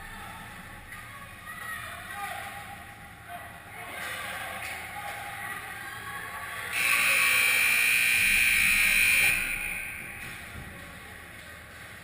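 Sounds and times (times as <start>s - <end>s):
scoreboard horn blast: 6.8s - 10.1s.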